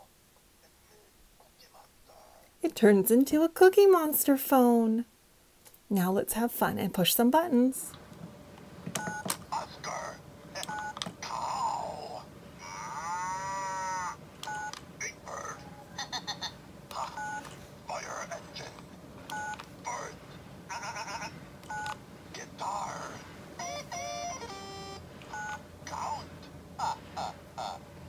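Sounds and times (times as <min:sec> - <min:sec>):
recorded toy voice clips: 0:09.5 - 0:14.2, 0:22.4 - 0:23.2, 0:25.8 - 0:27.8.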